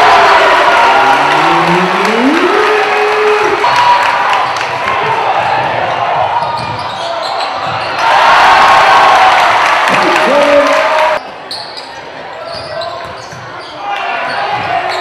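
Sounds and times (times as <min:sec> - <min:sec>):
crowd chatter: 0:00.0 - 0:07.9
person calling out rising tone: 0:01.2 - 0:03.5.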